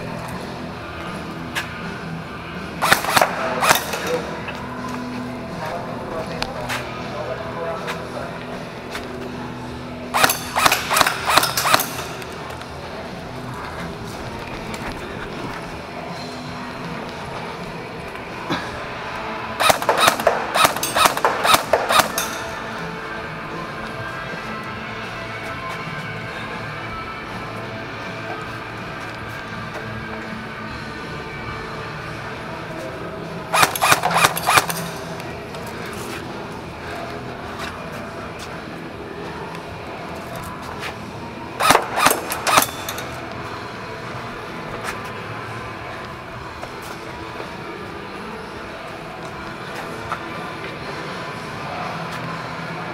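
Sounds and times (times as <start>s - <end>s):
airsoft gun firing shots: 2.8s - 4.2s, 10.2s - 12.3s, 19.6s - 22.6s, 33.5s - 35.0s, 41.6s - 43.1s.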